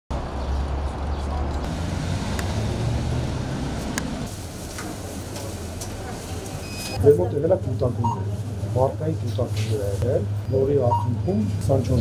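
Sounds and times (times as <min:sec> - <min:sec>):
passing vehicles rumble: 0:00.1 - 0:12.0
city hiss: 0:01.7 - 0:06.6.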